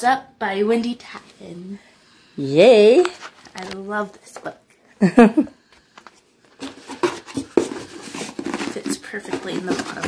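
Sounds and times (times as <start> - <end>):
rustling in cardboard box: 6.5 - 10.0.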